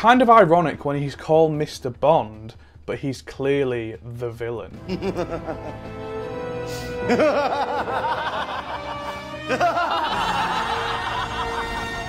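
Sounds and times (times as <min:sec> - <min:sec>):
background music: 0:00.0 - 0:12.0
group of men laughing evilly: 0:04.8 - 0:06.0, 0:06.8 - 0:12.0.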